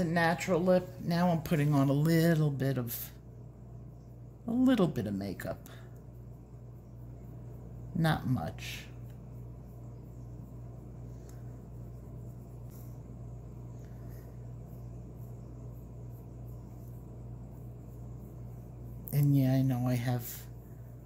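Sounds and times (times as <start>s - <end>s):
steady low hum: 0.0s - 21.0s.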